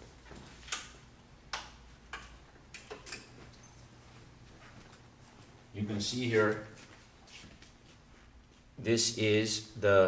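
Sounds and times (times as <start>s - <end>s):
faint low room hum: 0.0s - 10.0s
hard-soled footsteps on hard floor: 3.4s - 5.6s, 6.3s - 8.8s.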